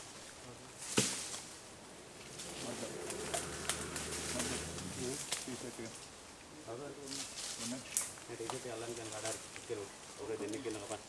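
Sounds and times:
footsteps through undergrowth: 0.0s - 6.2s, 7.0s - 11.0s
leaves rustling: 0.0s - 11.0s
twigs snapping: 2.2s - 6.1s, 7.9s - 9.7s.

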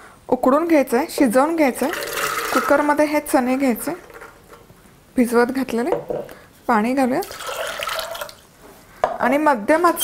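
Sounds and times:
water pouring into a pot: 1.9s - 2.8s, 7.2s - 8.5s.

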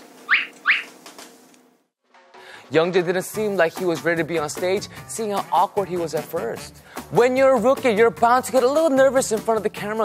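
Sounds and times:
rising whistle-like chirps: 0.3s - 0.9s.

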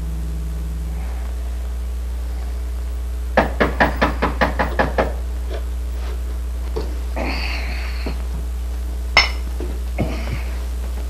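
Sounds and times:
steady low hum: 0.0s - 11.0s
rapid knocking on a door: 3.4s - 5.2s.

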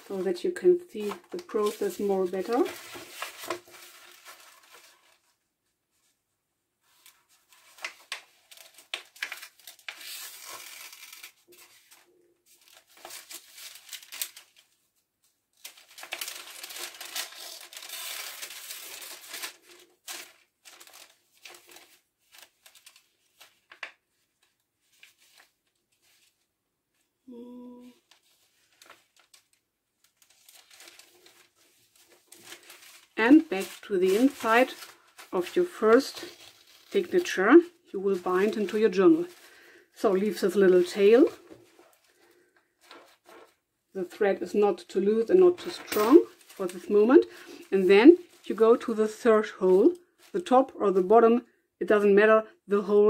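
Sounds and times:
paper pages rustling: 0.0s - 6.1s, 6.8s - 27.1s, 27.8s - 44.2s, 45.1s - 50.5s.

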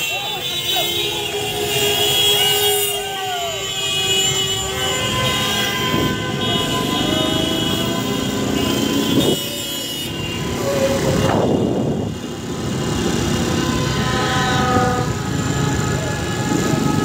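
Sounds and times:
car horns honking: 0.0s - 17.0s
vehicle engines in traffic: 0.0s - 17.0s.

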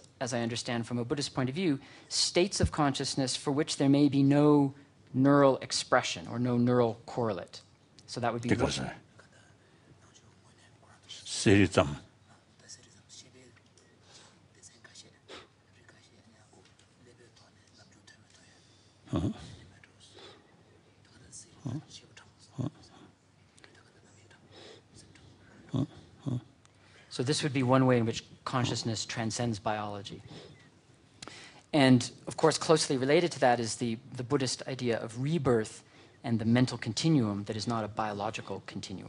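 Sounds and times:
man speaking: 0.0s - 9.5s, 10.2s - 14.0s, 14.6s - 23.0s, 27.1s - 30.6s, 31.7s - 39.0s
whispering: 9.2s - 11.3s, 12.2s - 26.5s.

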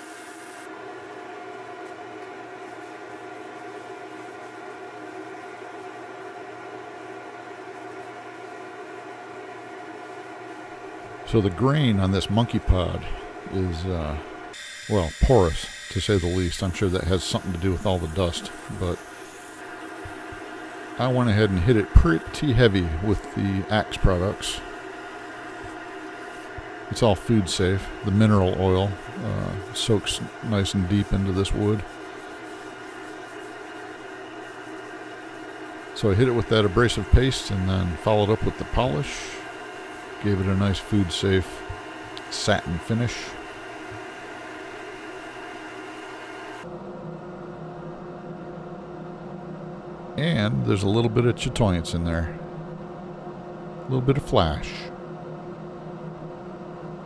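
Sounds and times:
wood lathe sanding hum and hiss: 0.0s - 46.7s.

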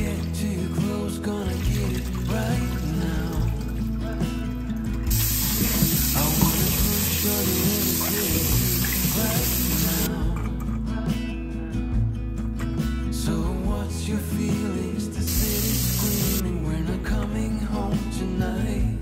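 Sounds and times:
background music: 0.0s - 19.0s
tap water splashing into sink: 1.6s - 3.8s, 4.8s - 10.1s.

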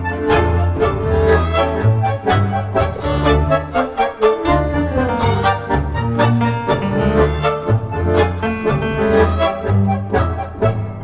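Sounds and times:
double bass short notes: 0.0s - 3.7s
bandoneon: 0.0s - 11.0s
bowed violins: 0.0s - 11.0s.

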